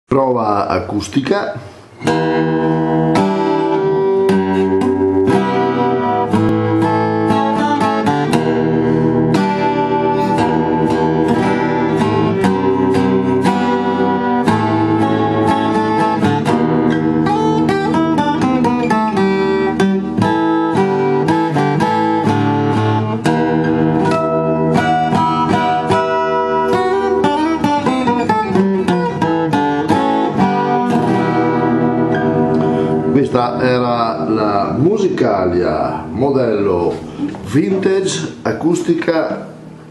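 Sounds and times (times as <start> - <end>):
acoustic guitar picking: 1.7 - 38.5.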